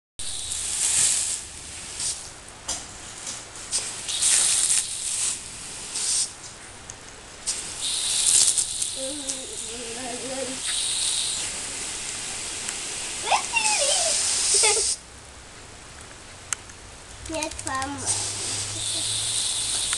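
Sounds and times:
sprinkler water jet hissing: 0.2 - 6.5, 7.4 - 15.0, 17.2 - 19.9.

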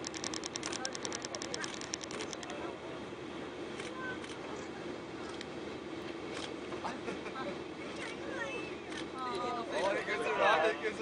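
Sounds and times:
scattered clicks: 0.0 - 2.6.

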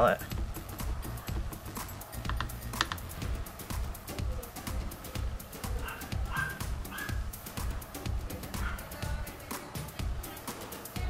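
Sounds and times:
quiet background music: 0.0 - 11.0
makeup brush clicks and taps: 2.2 - 3.0.

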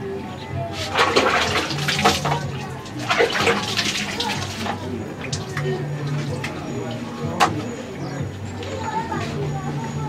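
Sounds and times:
background music: 0.0 - 10.0
water splashing and pouring: 0.7 - 6.5.

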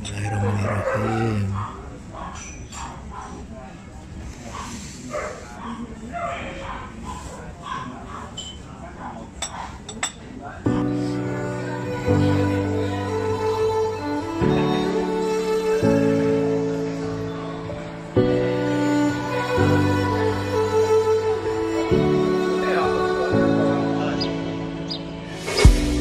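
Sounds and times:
people talking: 0.0 - 2.1
bowed string music: 10.7 - 26.0.

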